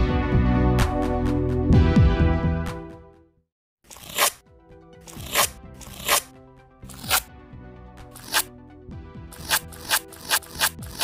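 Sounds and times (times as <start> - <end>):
background music: 0.0 - 3.4, 4.0 - 11.0
masking tape ripping off roll: 5.1 - 6.3, 9.4 - 11.0.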